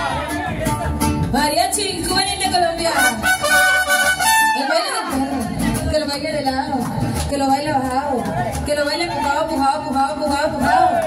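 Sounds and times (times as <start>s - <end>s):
mariachi band playing: 0.0s - 11.0s.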